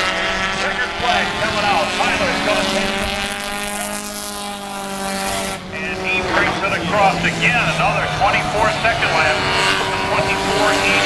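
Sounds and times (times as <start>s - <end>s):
race car engines at speed: 0.0s - 11.0s.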